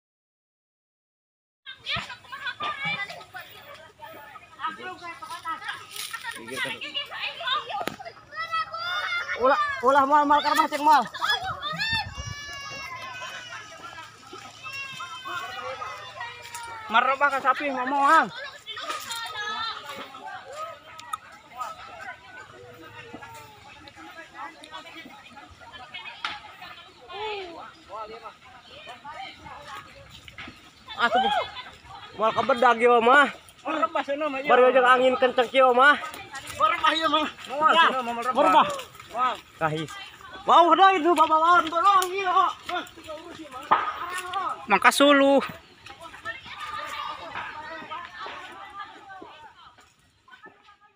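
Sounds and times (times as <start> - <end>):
people calling out and talking: 1.7 - 50.9.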